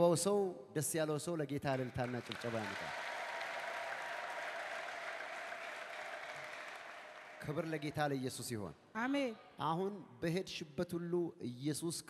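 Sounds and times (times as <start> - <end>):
crowd applauding: 1.7 - 8.1.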